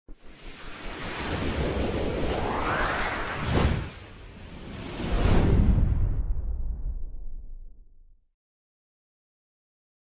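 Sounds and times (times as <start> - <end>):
rushing whoosh: 0.3 - 7.0.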